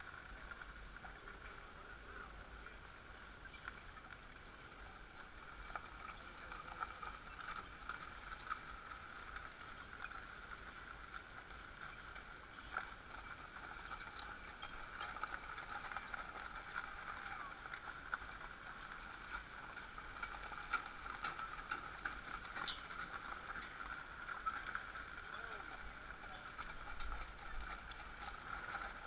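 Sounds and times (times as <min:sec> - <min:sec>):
hooves clip-clopping on gravel: 0:00.0 - 0:29.0
wagons rolling: 0:00.0 - 0:29.0.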